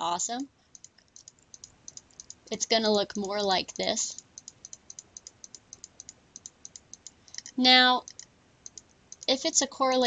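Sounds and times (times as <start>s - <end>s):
computer mouse clicking rapidly: 0.7s - 9.4s.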